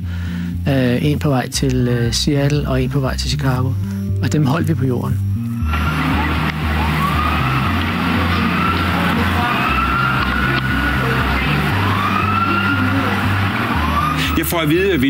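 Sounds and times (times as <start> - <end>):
street noise: 5.5 - 15.0
emergency sirens wailing: 5.6 - 15.0.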